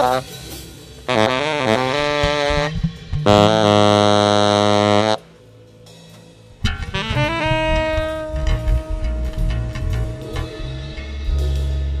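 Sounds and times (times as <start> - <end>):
tenor saxophone long low note: 1.1 - 5.2, 6.9 - 10.9.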